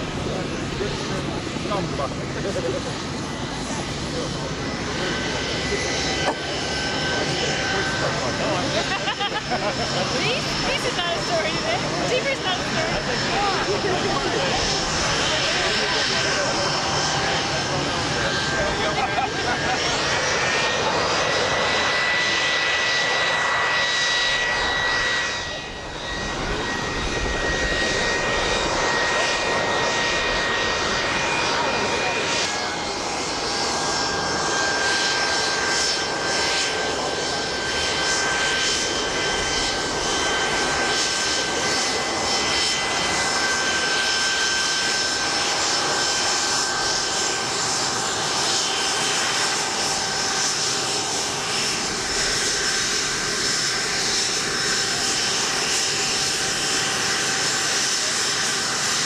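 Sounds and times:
jet engines whining and roaring: 0:00.0 - 0:59.0.

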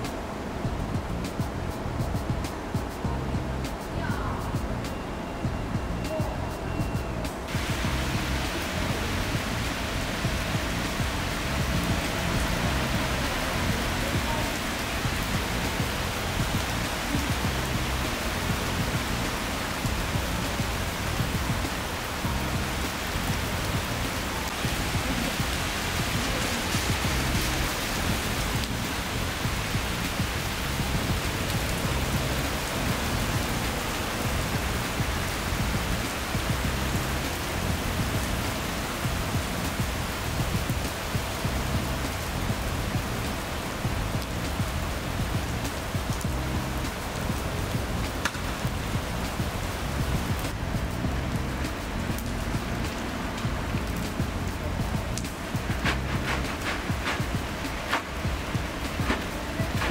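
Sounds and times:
background music: 0:00.0 - 0:59.9
heavy rain on pavement: 0:00.0 - 0:59.9.

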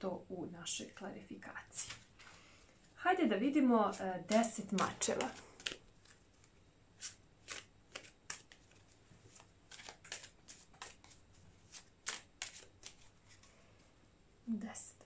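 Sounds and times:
cards being shuffled: 0:03.9 - 0:13.5.

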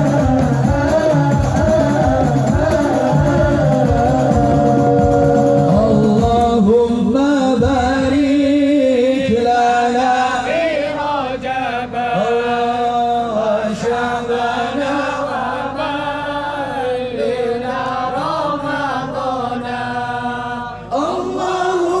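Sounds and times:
man singing devotional song: 0:00.0 - 0:22.0.

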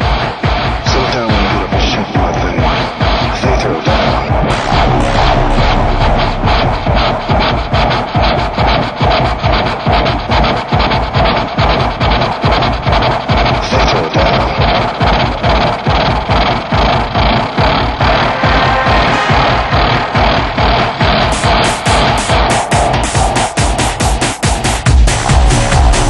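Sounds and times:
instrumental techno music: 0:00.0 - 0:26.0.

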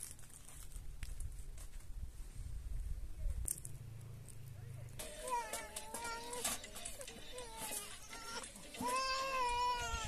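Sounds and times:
infant crying: 0:05.2 - 0:10.0.

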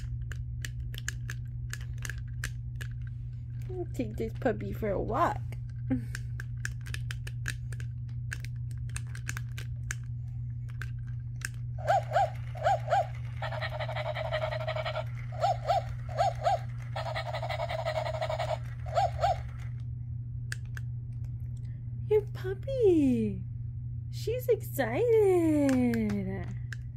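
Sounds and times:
toy dog yapping from small speaker: 0:11.8 - 0:19.7
breathy toy sound: 0:11.8 - 0:19.8.

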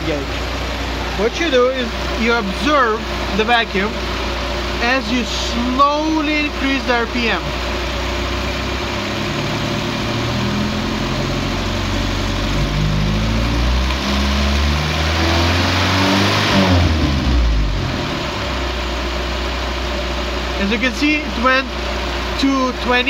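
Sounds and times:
car engine revving and idling: 0:00.0 - 0:23.0.

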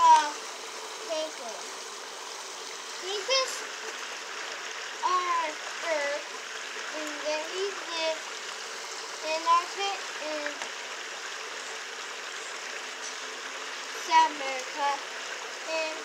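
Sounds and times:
running water rushing: 0:00.0 - 0:16.0.

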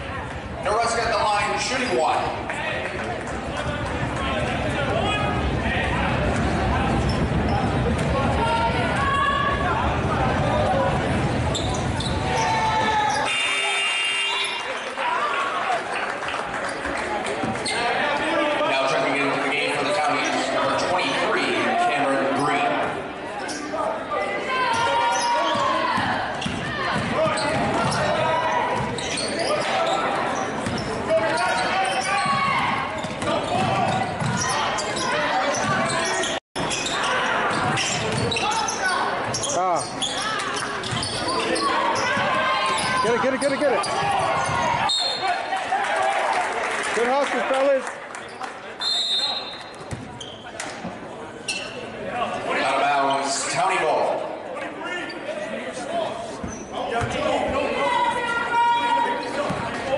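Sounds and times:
voices in echoing gym: 0:00.0 - 0:59.9
basketball bouncing on wooden floor: 0:32.2 - 0:34.4.

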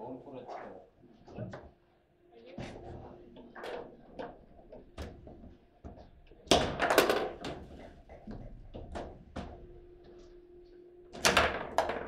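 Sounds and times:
foosball ball and rods rattling: 0:03.5 - 0:09.6, 0:11.2 - 0:12.0.

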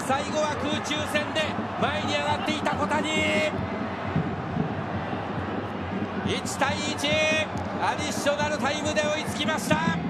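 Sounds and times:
commentator talking: 0:00.0 - 0:03.6, 0:06.2 - 0:10.0
stadium crowd noise: 0:00.0 - 0:10.0.

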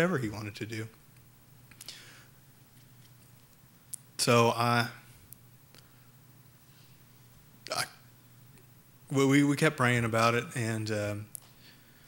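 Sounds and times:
man speaking: 0:00.0 - 0:01.0, 0:04.2 - 0:05.1, 0:07.7 - 0:08.0, 0:09.1 - 0:11.3.

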